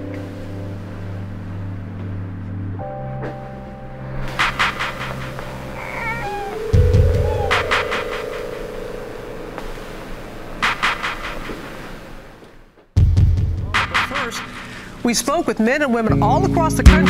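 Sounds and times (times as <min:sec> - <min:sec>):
film score sustained tones: 0:00.0 - 0:12.2
baby crying: 0:05.6 - 0:08.6.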